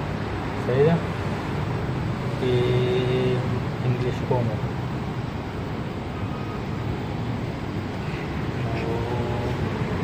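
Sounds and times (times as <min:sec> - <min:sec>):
low hum of metro station: 0:00.0 - 0:10.0.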